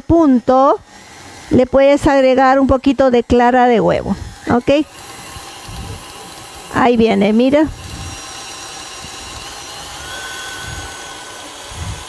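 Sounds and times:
electric stand mixer running: 0.2s - 12.0s.

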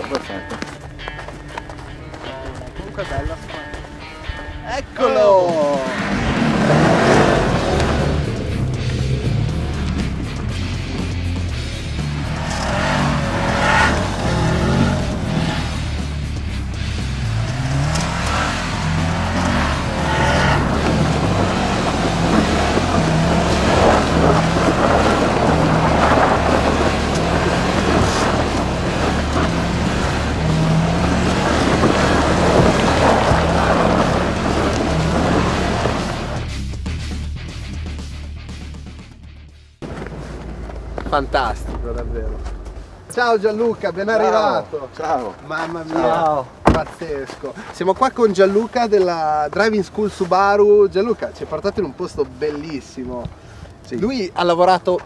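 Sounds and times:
background music with bass: 0.0s - 45.2s
car engine revving: 5.3s - 39.2s, 39.8s - 47.0s.

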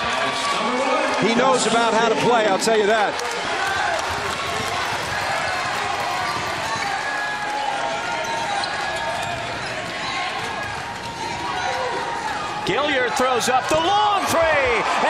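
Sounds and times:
players calling out: 1.2s - 15.0s
basketball dribbling: 4.1s - 7.1s.

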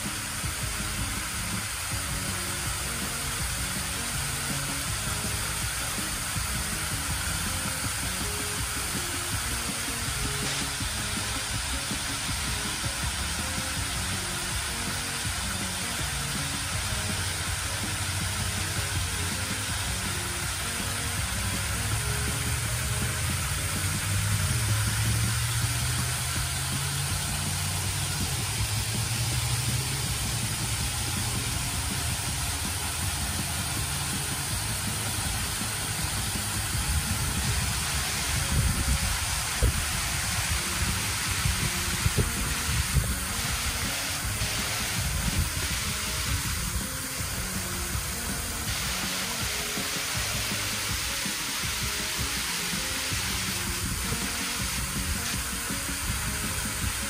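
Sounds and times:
fountain water spraying: 0.0s - 57.0s.

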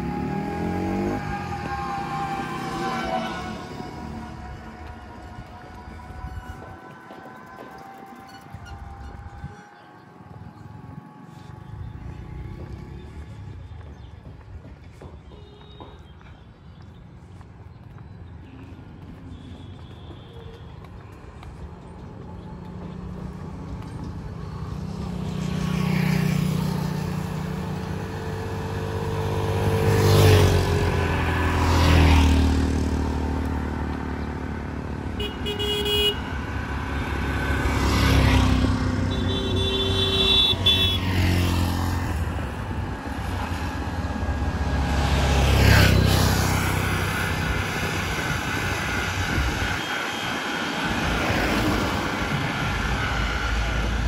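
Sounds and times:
vehicles passing: 0.0s - 54.0s
vehicle horn: 35.1s - 41.6s.

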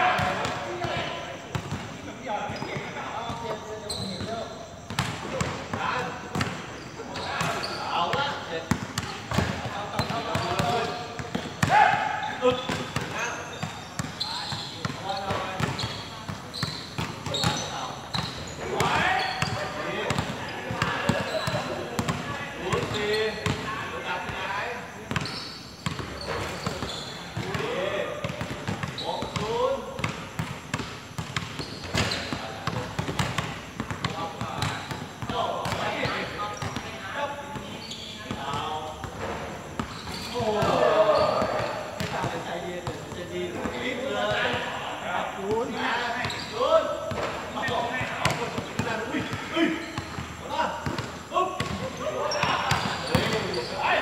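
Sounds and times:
basketball bouncing on hard court: 4.9s - 5.5s, 8.7s - 23.6s, 25.1s - 27.6s, 28.2s - 36.8s, 47.1s - 53.6s
players shouting: 11.6s - 12.6s, 40.3s - 41.6s.

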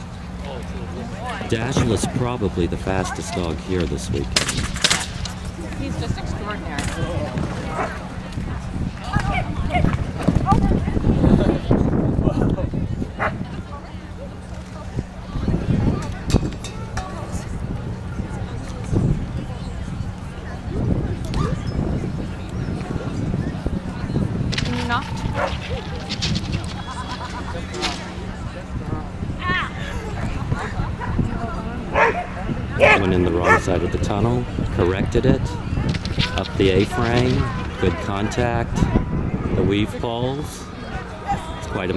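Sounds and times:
dog barking: 31.9s - 33.7s.

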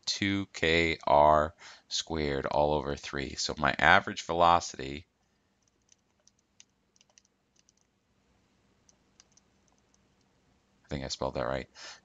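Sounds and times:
man speaking: 0.0s - 5.0s, 10.9s - 12.0s.

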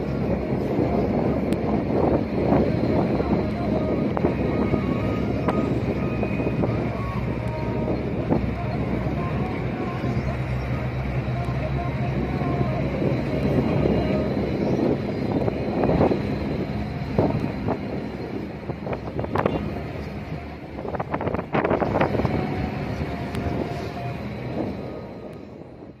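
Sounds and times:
truck engine and road rumble: 0.0s - 26.0s
wind on microphone: 0.0s - 26.0s.

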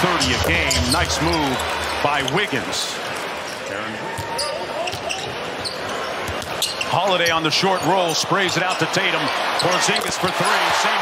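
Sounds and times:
crowd noise: 0.0s - 11.0s.

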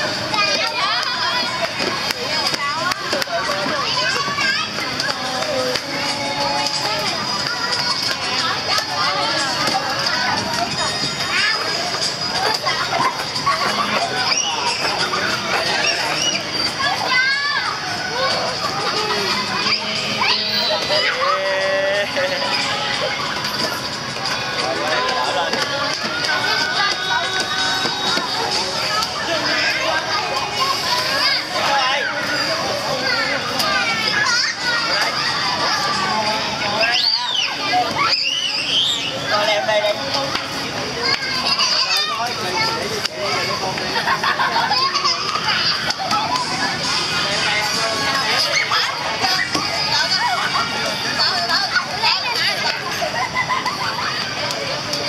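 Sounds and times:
adults talking: 0.0s - 55.0s
children playing and calling out: 0.0s - 55.0s.

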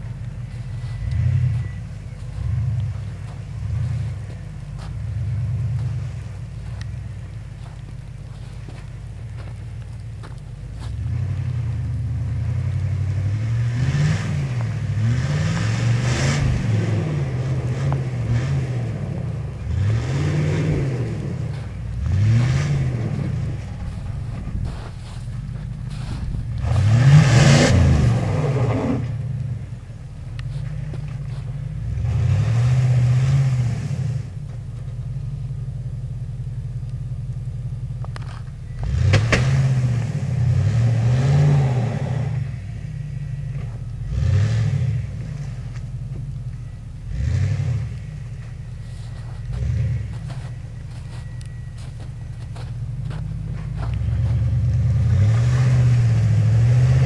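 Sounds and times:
truck engine revving: 0.0s - 34.6s, 38.1s - 57.0s
tyres spraying snow: 2.2s - 29.8s, 47.2s - 57.0s.

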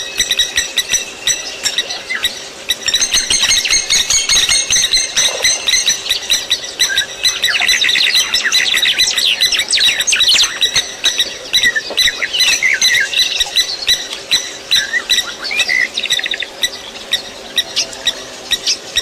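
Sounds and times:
flock of small birds chirping: 0.0s - 19.0s.

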